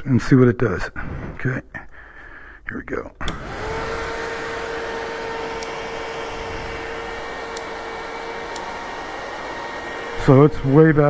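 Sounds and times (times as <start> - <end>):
electric cooling fan whirring: 3.2 - 11.0.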